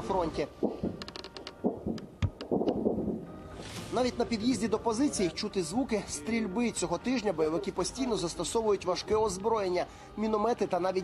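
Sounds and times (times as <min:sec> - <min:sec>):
dull low thumps: 0:00.6 - 0:03.6.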